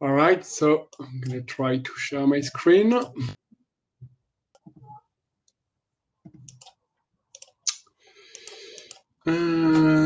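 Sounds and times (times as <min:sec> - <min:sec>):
computer mouse clicks: 0:06.3 - 0:09.1.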